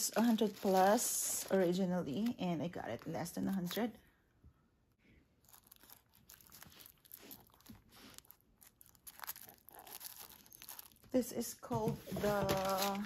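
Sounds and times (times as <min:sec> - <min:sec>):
tissue paper crinkling: 0:00.0 - 0:03.9, 0:05.4 - 0:11.2, 0:12.0 - 0:13.0.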